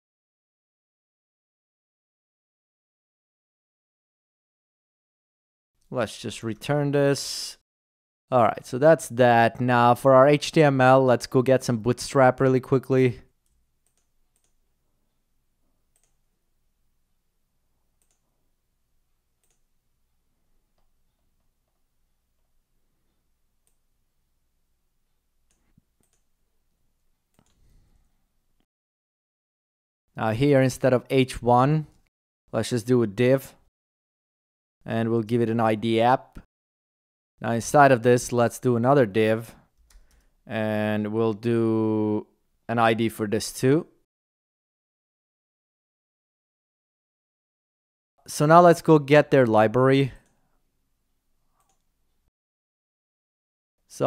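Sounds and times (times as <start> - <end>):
person speaking: 5.8 - 7.6, 8.3 - 13.4, 30.2 - 33.6, 34.8 - 36.5, 48.2 - 50.3.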